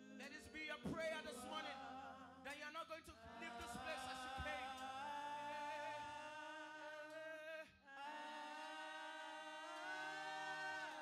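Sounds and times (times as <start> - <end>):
women singing softly: 0.0 - 2.6, 3.2 - 7.3, 8.0 - 11.0
man singing: 0.0 - 7.7.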